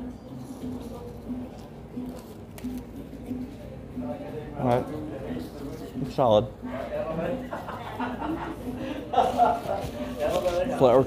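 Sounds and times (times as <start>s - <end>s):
faint distant voices: 0.0s - 11.0s
music: 0.0s - 11.0s.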